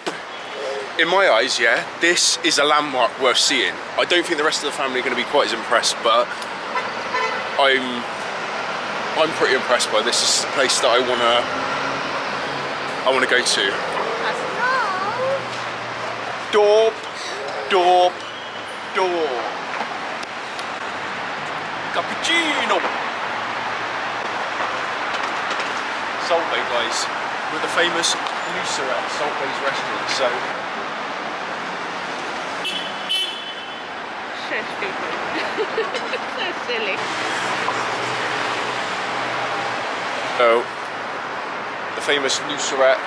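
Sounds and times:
street traffic hiss: 0.0 - 43.0.

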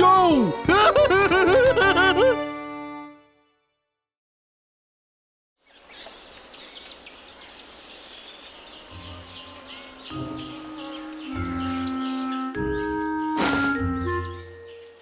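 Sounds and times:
birds chirping: 5.6 - 15.0
light outdoor hiss: 5.6 - 15.0
background music with bass line: 9.0 - 14.8.

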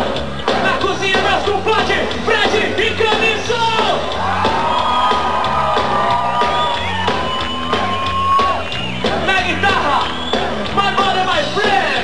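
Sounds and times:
live punk rock band: 0.0 - 12.0.

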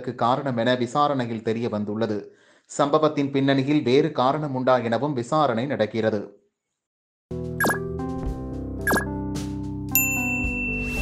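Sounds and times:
bright ding chime: 9.9 - 11.0
jingle music: 9.9 - 11.0.

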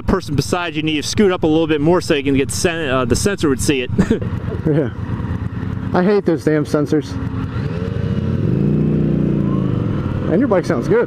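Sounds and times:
motorcycle engine accelerating: 0.0 - 11.0.

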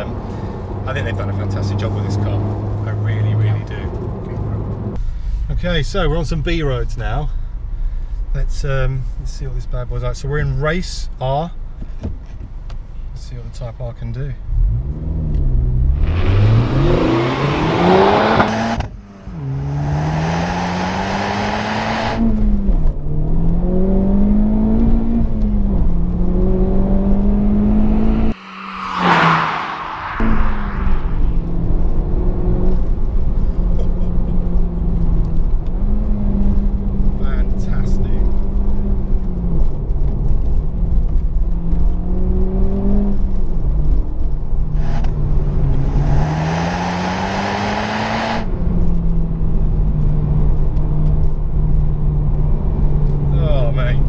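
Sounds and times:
car engine accelerating hard: 0.0 - 5.0, 14.4 - 54.0
turbo whoosh: 27.9 - 31.8.

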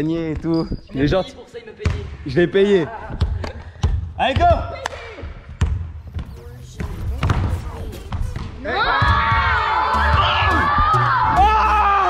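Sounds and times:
basketballs bouncing on wooden floor: 1.8 - 2.2, 3.1 - 4.8, 5.5 - 10.9
children shouting and cheering: 8.6 - 12.0.

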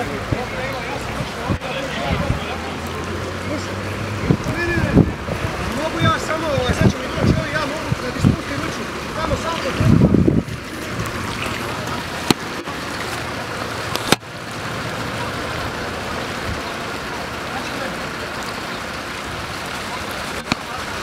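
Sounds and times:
floodwater rushing: 0.0 - 21.0.

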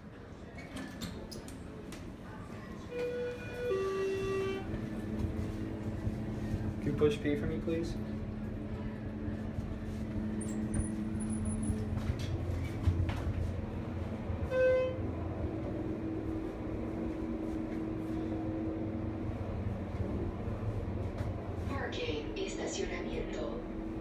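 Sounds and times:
elevator hum and rumble: 0.0 - 24.0.

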